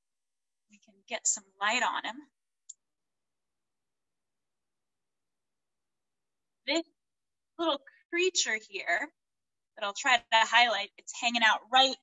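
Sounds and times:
woman speaking: 0:01.0 - 0:02.3, 0:07.6 - 0:09.1, 0:09.8 - 0:12.0.

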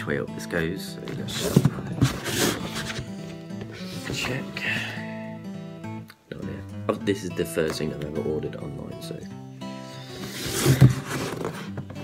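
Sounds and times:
background music with held notes: 0:00.0 - 0:12.0
cardboard box rustling thump: 0:01.1 - 0:03.1, 0:10.2 - 0:12.0.

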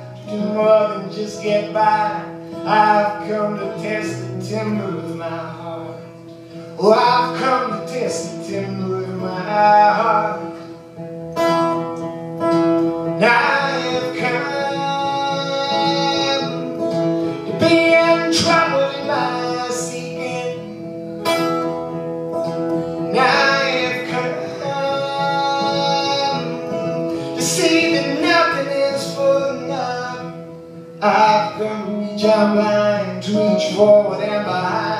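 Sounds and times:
man singing: 0:00.0 - 0:10.8, 0:13.0 - 0:21.6, 0:23.0 - 0:34.9
strummed acoustic guitar: 0:00.0 - 0:34.9.

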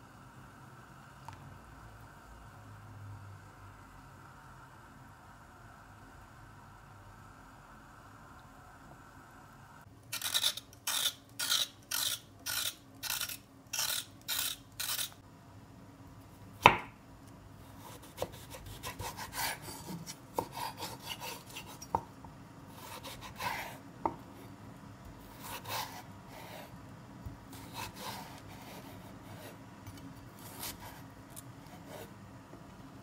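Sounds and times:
rasping strokes: 0:10.2 - 0:15.2
knife slicing carrot on board: 0:17.8 - 0:22.1.

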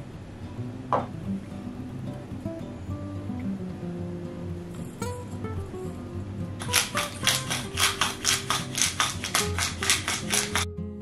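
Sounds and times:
background music: 0:00.0 - 0:11.0
pepper mill grinding: 0:06.6 - 0:10.7.

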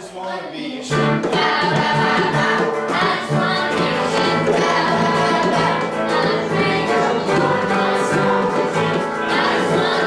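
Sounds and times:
group singing along: 0:00.0 - 0:10.0
bongos: 0:00.9 - 0:10.0
electric guitar: 0:00.9 - 0:10.0.

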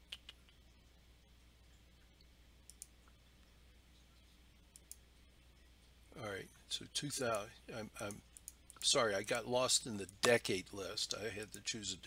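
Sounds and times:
computer mouse clicking: 0:02.7 - 0:02.9, 0:04.7 - 0:05.0.

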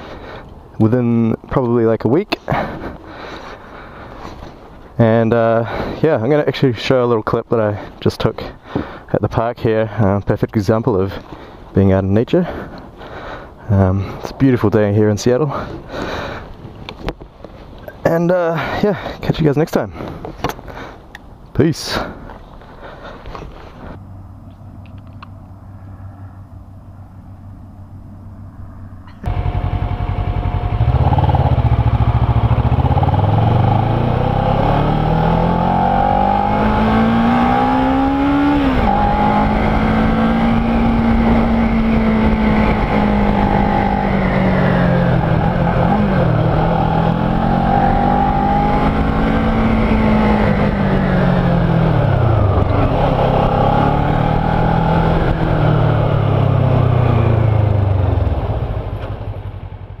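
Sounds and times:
wind and road noise: 0:00.0 - 1:00.0
motorcycle engine revving: 0:29.2 - 1:00.0.

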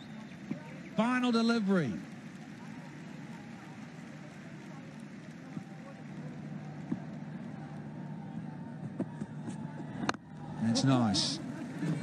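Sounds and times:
distant crowd voices: 0:00.0 - 0:12.0.

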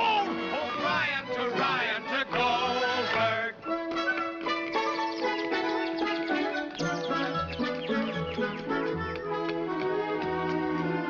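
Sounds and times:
men singing: 0:00.0 - 0:03.7.

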